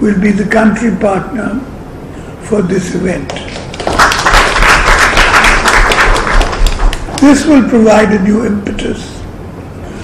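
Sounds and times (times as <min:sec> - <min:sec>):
audience applauding: 0:03.5 - 0:07.3.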